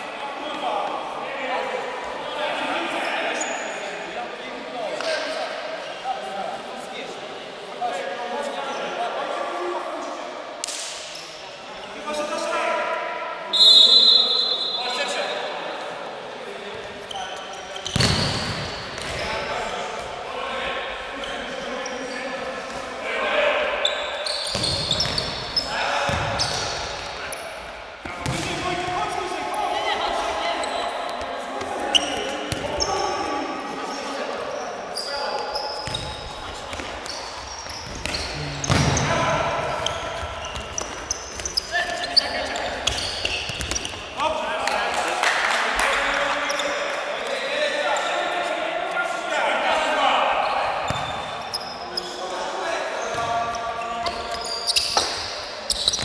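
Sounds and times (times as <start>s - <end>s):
referee's whistle: 13.5s - 15.1s.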